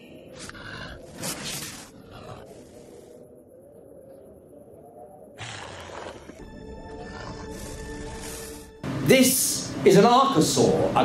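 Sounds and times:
low documentary soundtrack: 6.0 - 11.0.

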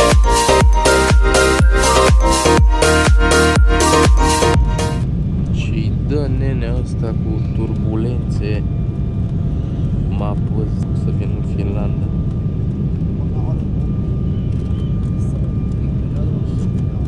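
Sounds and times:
airliner engine rumble: 5.0 - 17.0.

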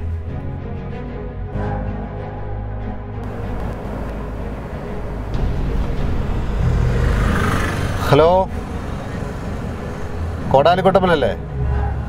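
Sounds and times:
road and engine rumble in car: 3.2 - 12.0.

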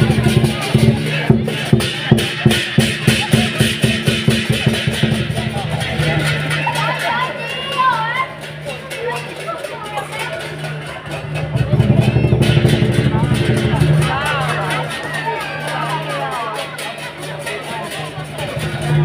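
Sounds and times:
crowd voices: 0.0 - 19.0
drum and clashing cymbals: 0.0 - 19.0.

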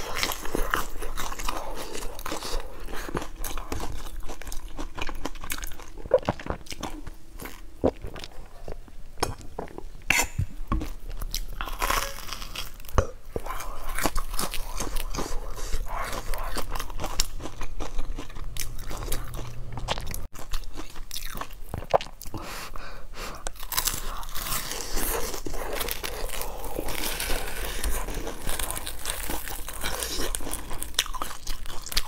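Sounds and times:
crunchy biting and chewing: 11.1 - 22.4, 23.4 - 32.0.

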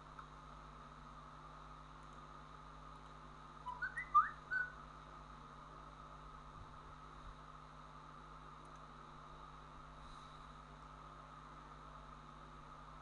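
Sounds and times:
faint hum and hiss: 0.0 - 13.0
whistled phrase: 3.7 - 4.8.

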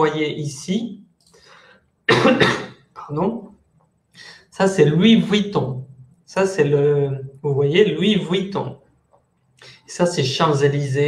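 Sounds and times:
faint breath: 1.3 - 1.9, 4.2 - 4.5, 9.6 - 9.9
man coughing: 2.1 - 2.8.

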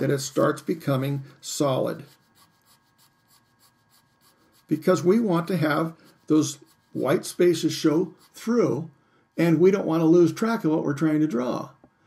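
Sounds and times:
pencil scratching on paper: 0.0 - 8.7.

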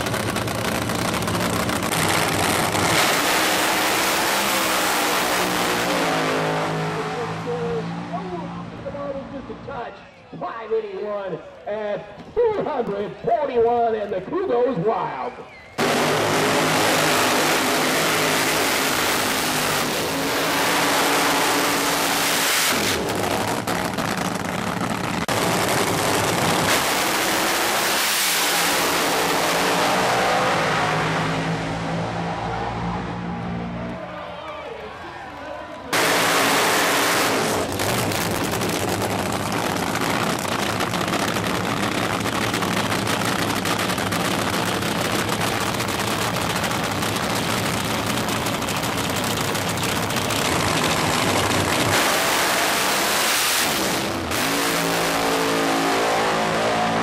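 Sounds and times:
loud drag racing engines: 0.0 - 57.0.

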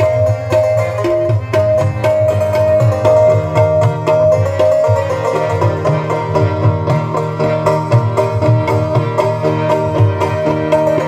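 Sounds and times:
harmoniums holding a melody: 0.0 - 11.0
tabla drumming: 0.0 - 11.0.

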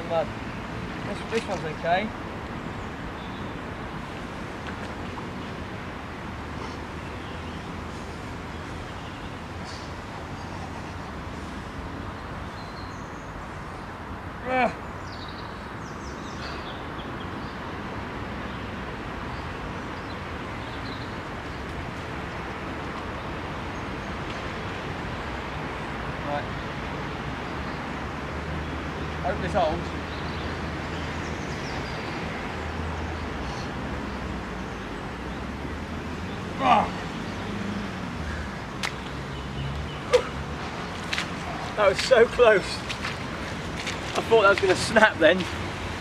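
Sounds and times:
outdoor background noise: 0.0 - 46.0.

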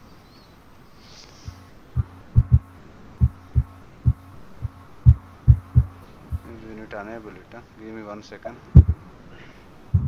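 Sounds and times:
faint steady hum: 0.0 - 10.0
dull low thumps: 1.5 - 6.7, 8.7 - 9.1.

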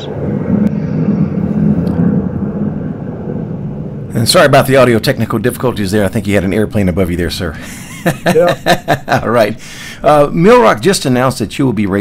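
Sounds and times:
airplane flying overhead: 0.0 - 7.9.

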